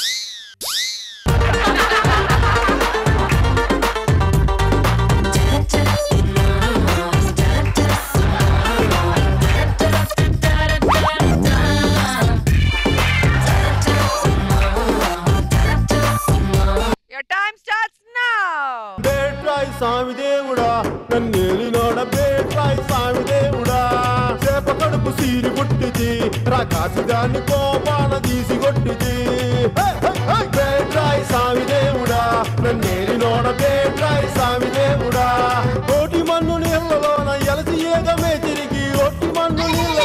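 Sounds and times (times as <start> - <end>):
cartoon slide whistle: 0.0 - 1.3
dance music with heavy beat: 1.3 - 17.0.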